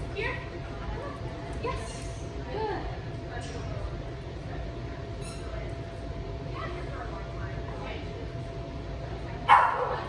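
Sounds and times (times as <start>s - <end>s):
loud dog bark: 9.5s - 10.0s.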